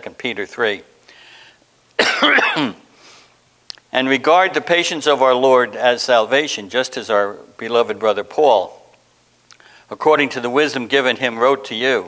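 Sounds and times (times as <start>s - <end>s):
man coughing: 2.0s - 2.9s.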